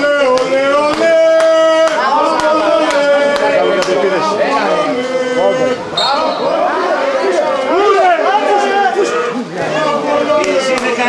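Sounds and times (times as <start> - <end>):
spectators shouting and talking: 0.0 - 11.0.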